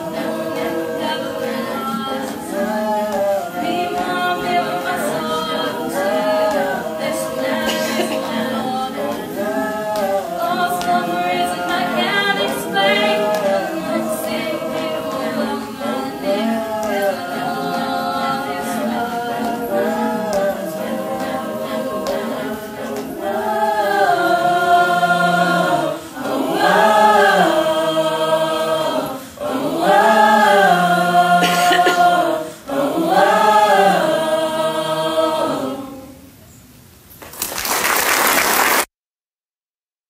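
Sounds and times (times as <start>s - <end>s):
choir singing wordless phrase: 0.0s - 36.4s
applause: 37.2s - 38.9s.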